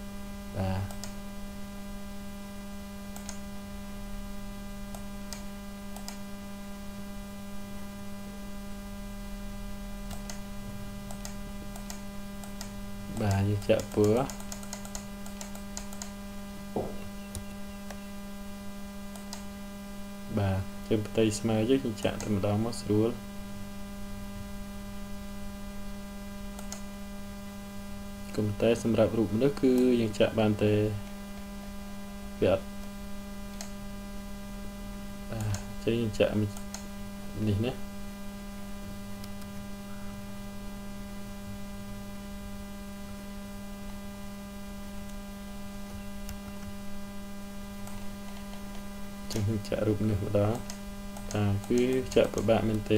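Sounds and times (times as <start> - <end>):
electrical mains hum: 0.0 - 52.9
faint clicks: 0.8 - 1.2, 3.1 - 3.4, 4.9 - 6.2, 11.1 - 16.2, 19.1 - 19.5, 26.6 - 26.9, 33.5 - 33.8, 35.3 - 35.7, 36.5 - 36.9, 50.5 - 52.9
faint click: 39.2 - 39.5.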